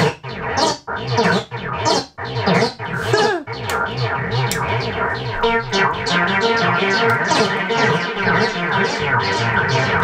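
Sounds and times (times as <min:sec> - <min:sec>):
garbled looping music: 0:00.0 - 0:10.0.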